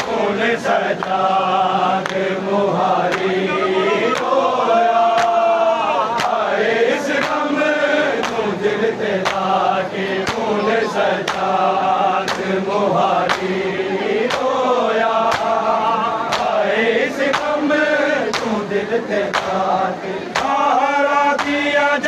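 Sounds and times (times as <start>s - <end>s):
men chanting in unison: 0.0s - 22.0s.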